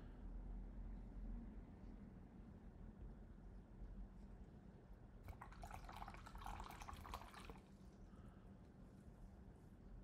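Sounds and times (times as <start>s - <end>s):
brush rinsed in water jar: 5.3s - 7.6s.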